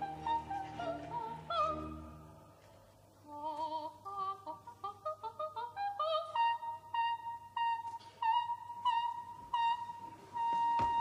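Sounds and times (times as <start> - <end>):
operatic soprano singing: 0.0 - 2.6, 3.2 - 11.0.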